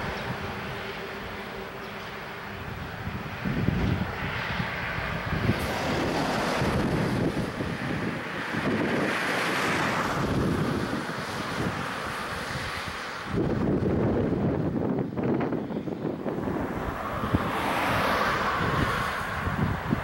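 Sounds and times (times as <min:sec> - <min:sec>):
passing cars and trucks: 0:00.0 - 0:20.0
wind buffeting microphone: 0:00.0 - 0:20.0.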